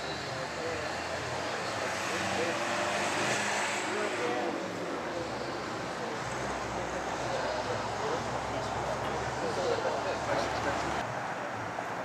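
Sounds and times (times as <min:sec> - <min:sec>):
people talking: 0:03.9 - 0:11.0.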